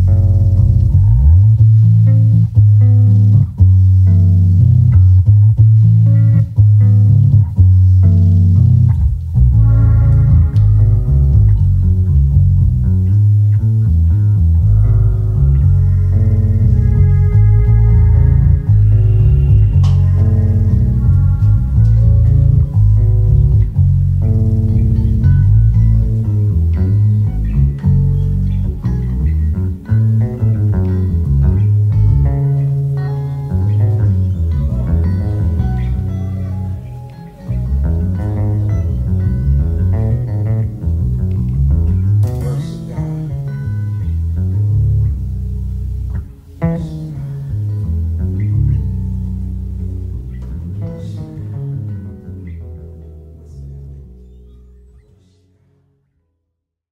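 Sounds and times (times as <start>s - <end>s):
held chords: 0.0s - 55.1s
electric bass guitar low notes: 0.0s - 55.6s.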